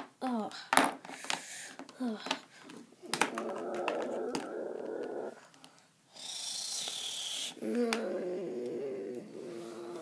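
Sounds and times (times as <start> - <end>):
person growling: 3.0 - 5.4, 7.5 - 10.0
person hissing with mouth: 6.1 - 8.1.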